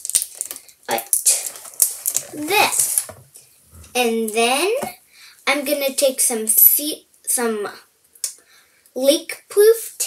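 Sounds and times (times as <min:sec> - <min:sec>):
plastic bottle clicks and crinkles: 0:00.0 - 0:03.3.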